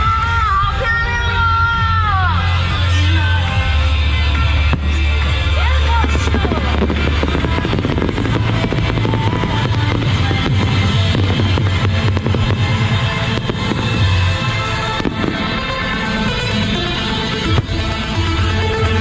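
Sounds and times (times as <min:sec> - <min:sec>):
fireworks crackling: 0:00.0 - 0:19.0
loud music with deep bass: 0:00.0 - 0:19.0.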